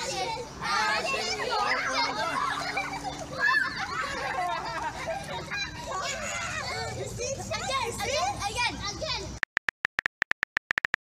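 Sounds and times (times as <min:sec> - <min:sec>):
children shouting in pool: 0:00.0 - 0:09.3.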